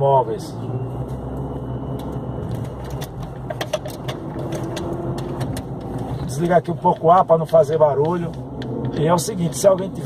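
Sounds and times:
engine and road hum: 0:00.0 - 0:10.0.

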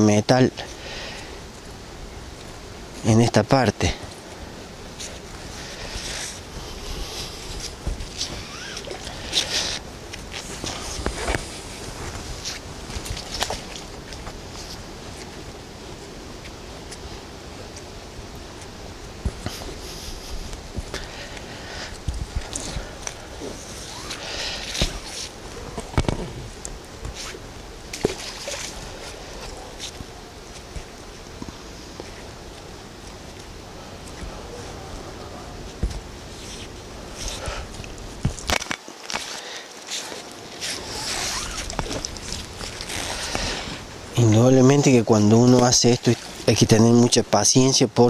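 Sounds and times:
water splashing and sloshing: 0:03.9 - 0:47.3.

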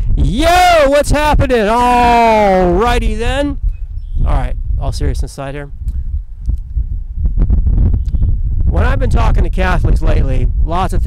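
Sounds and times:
wind buffeting microphone: 0:00.0 - 0:11.0.

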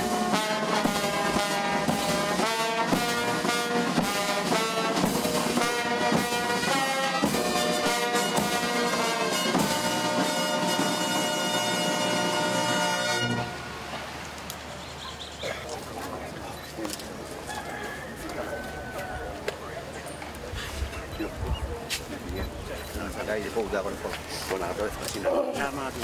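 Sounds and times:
brass band playing: 0:00.0 - 0:14.2.

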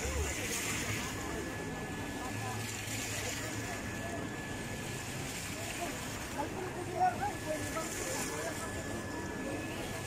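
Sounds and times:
fountain jets splashing: 0:00.0 - 0:10.0
murmur of voices: 0:00.0 - 0:10.0.

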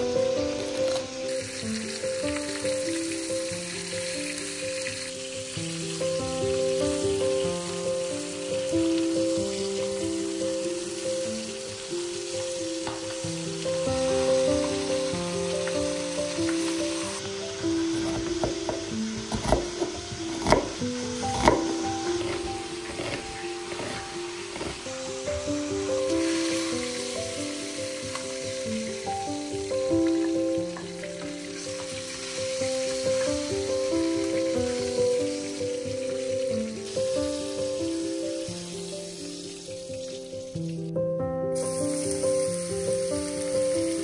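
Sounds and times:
chicken sizzling in a frying pan: 0:00.0 - 0:40.9, 0:41.6 - 0:44.0
background music of held notes: 0:00.0 - 0:44.0
gentle background melody: 0:00.0 - 0:44.0.

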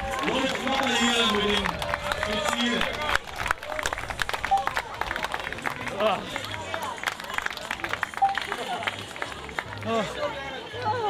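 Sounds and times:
crowd clapping: 0:00.0 - 0:11.0
crowd voices: 0:00.0 - 0:11.0.

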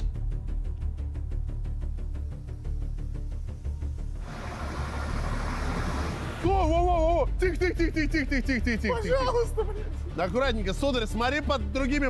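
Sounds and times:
hiss: 0:03.4 - 0:06.4
crane engine rumbling: 0:04.2 - 0:06.4.

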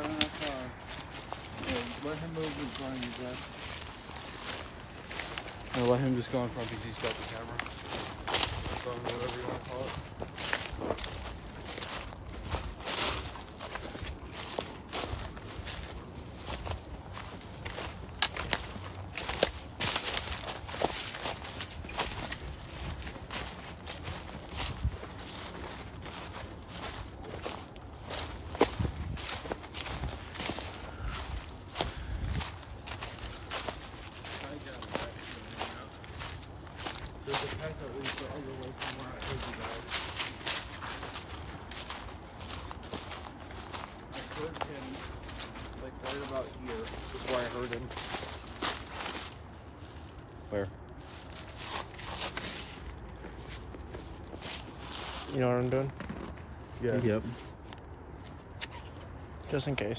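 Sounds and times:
footsteps crunching dry leaves: 0:00.0 - 0:59.9.

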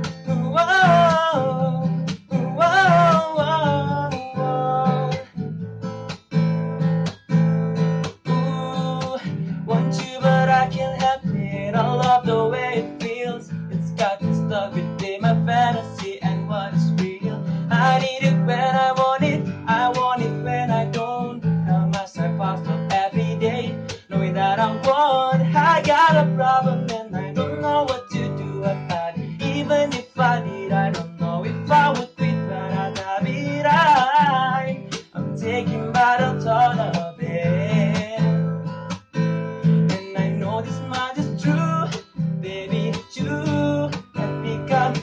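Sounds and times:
man singing: 0:00.0 - 0:05.5, 0:08.0 - 0:38.6, 0:39.2 - 0:45.0
acoustic guitar strumming: 0:00.0 - 0:45.0.

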